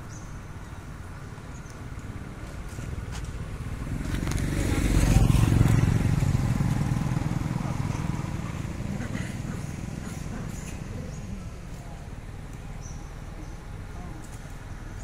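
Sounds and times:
motorcycle passing: 0:02.3 - 0:12.2.

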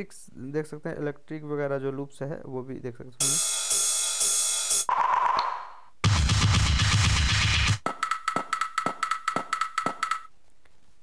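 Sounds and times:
electronic drum loop: 0:03.2 - 0:10.3.

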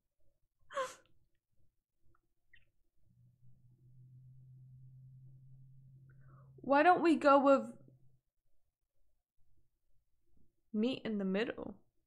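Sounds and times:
woman sighing: 0:00.7 - 0:01.1.

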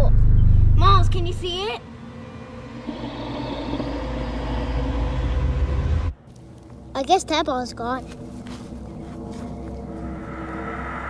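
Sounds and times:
low rumble: 0:00.0 - 0:06.8, 0:08.2 - 0:11.0.

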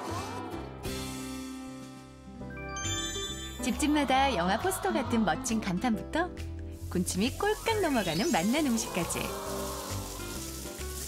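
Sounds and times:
soft background music: 0:00.0 - 0:11.0
batter sizzling on griddle: 0:06.7 - 0:11.0.

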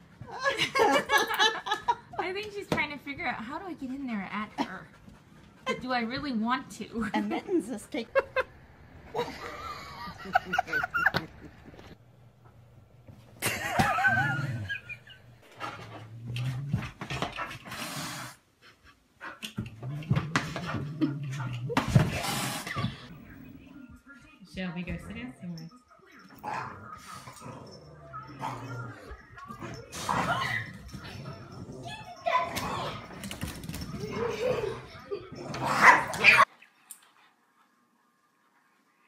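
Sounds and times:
dog barking: 0:35.8 - 0:36.4.

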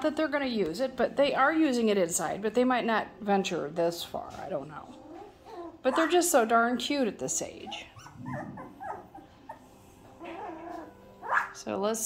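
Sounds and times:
puppy whimpering: 0:04.8 - 0:06.3, 0:07.6 - 0:11.6.

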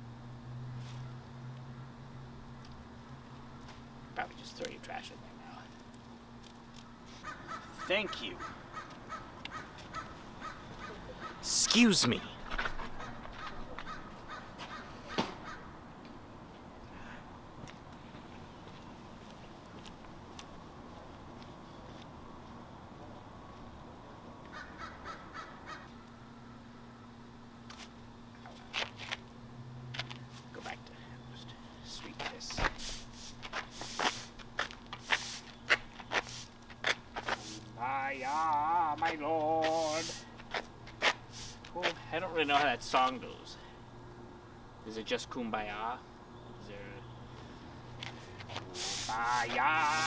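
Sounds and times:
crows cawing: 0:06.9 - 0:11.5, 0:12.8 - 0:15.8, 0:24.5 - 0:26.6
broom sweeping asphalt: 0:32.3 - 0:42.8, 0:48.0 - 0:50.0.

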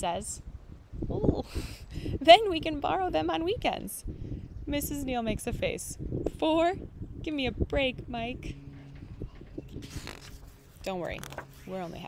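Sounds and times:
woman speaking: 0:00.0 - 0:00.4, 0:02.2 - 0:04.0, 0:04.7 - 0:08.5, 0:10.8 - 0:12.0
book page turning: 0:09.6 - 0:12.0.

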